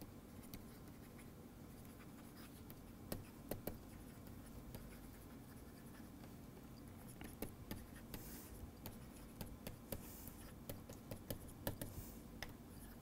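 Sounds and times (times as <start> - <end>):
low steady hum: 0.0 - 13.0
stylus scratching on tablet: 0.2 - 13.0.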